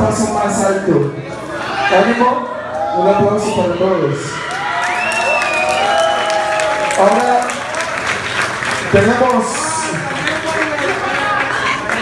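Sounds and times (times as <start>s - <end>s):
crowd cheering: 1.4s - 12.0s
scattered clapping: 4.5s - 12.0s.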